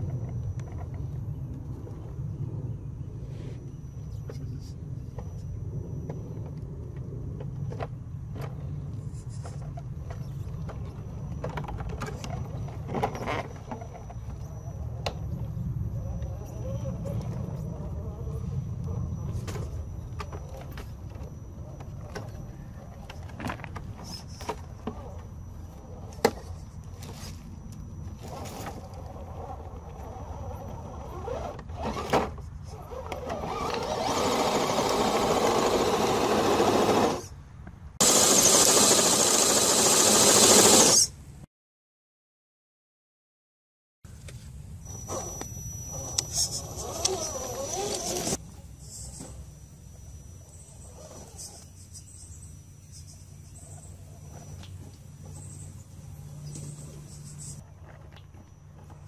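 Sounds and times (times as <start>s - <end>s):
small electric motor and gear whir: 3.8s - 37.4s, 38.0s - 41.2s, 44.8s - 57.6s.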